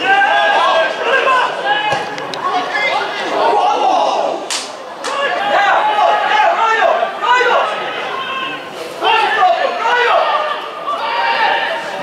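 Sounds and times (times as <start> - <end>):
men shouting: 5.1 - 11.9.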